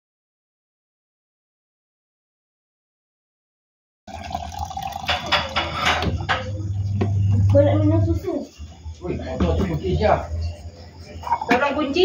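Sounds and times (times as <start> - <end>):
tap water splashing into sink: 4.4 - 6.4.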